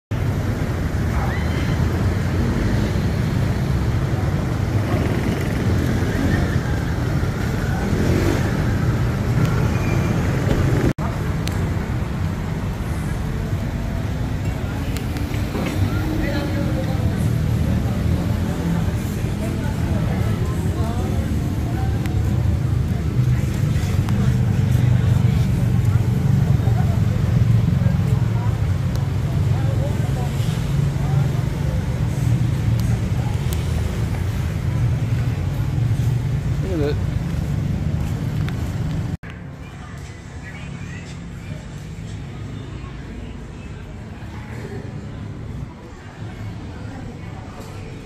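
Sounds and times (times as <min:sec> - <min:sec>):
road traffic rumble: 0:00.1 - 0:48.0.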